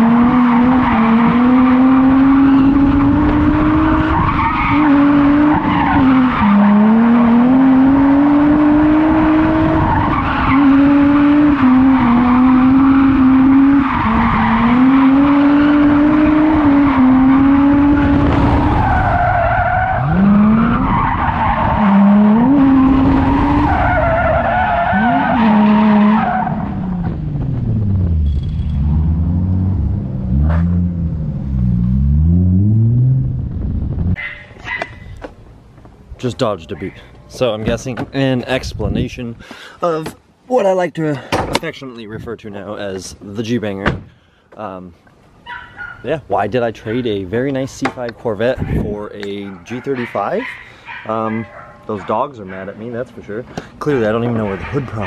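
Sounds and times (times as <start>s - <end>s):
car engine revving: 0.0s - 34.2s
tyres squealing on pavement: 4.0s - 6.8s, 13.6s - 26.8s.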